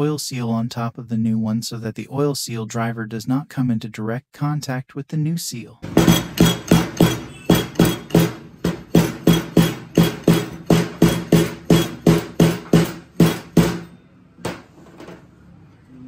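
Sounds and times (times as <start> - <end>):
metallic knocks of seal driver: 5.8 - 13.9.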